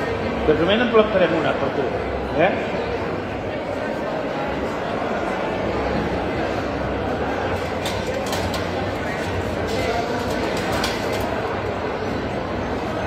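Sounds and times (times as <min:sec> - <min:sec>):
crowd chatter in a large hall: 0:00.0 - 0:13.0.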